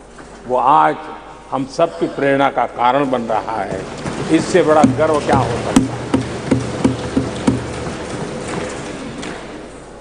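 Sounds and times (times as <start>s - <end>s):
hands thumping wooden desks: 3.9s - 9.4s.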